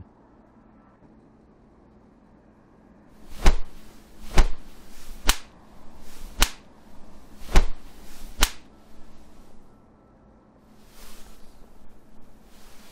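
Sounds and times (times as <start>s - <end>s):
cartoon slap hits: 3.3s - 5.5s, 6.2s - 6.7s, 7.4s - 8.7s.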